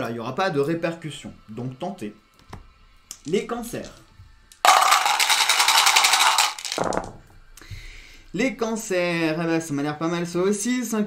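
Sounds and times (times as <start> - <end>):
dice clicking in tray: 4.6 - 7.1
dice rattling in hand: 4.6 - 7.1.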